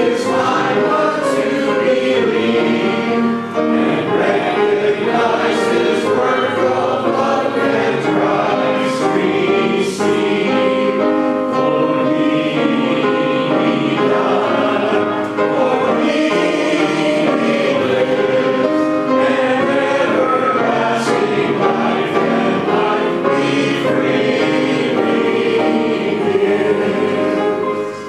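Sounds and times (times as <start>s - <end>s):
congregation singing a hymn: 0.0s - 28.0s
piano accompaniment: 0.0s - 28.0s.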